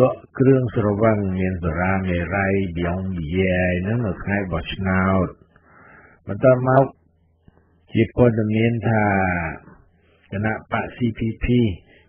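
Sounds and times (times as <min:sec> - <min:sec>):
man narrating: 0:00.0 - 0:05.4, 0:06.2 - 0:07.0, 0:07.9 - 0:12.0.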